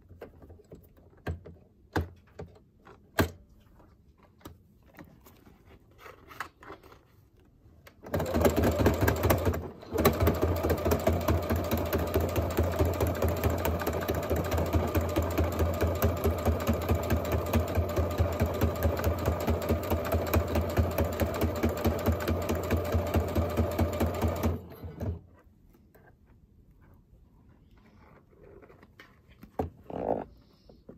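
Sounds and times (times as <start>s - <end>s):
sewing machine stitching: 8.0s - 25.2s.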